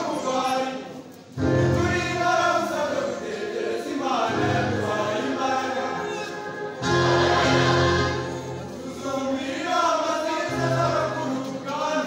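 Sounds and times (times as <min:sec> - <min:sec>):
large choir singing: 0:00.0 - 0:12.0.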